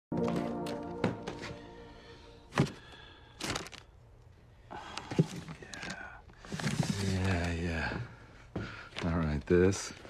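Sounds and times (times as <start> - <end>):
held musical chord: 0.1 - 2.5.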